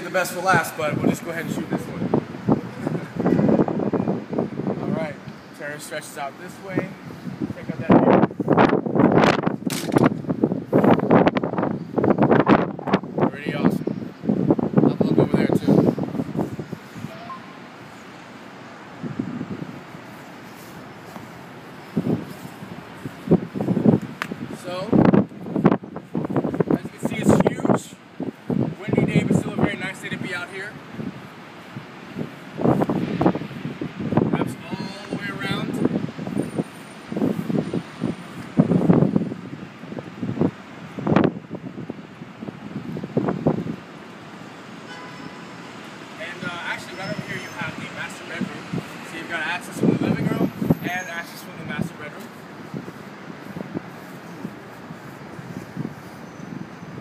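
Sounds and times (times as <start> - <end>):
distant traffic hum: 0.0 - 57.0
light wind: 0.0 - 57.0.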